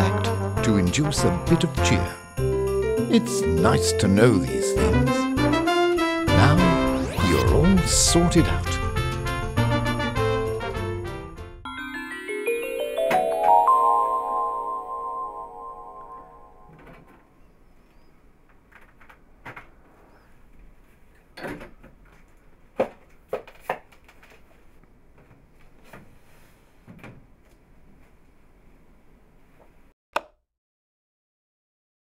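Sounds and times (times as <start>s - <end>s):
music with mallet percussion: 11.7s - 16.6s.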